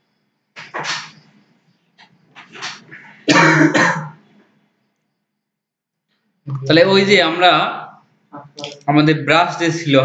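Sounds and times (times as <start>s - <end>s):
person clearing throat: 3.3s - 4.2s.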